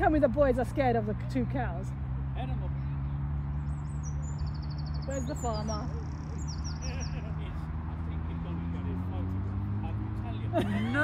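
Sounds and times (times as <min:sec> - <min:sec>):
small birds singing: 0:02.0 - 0:10.5.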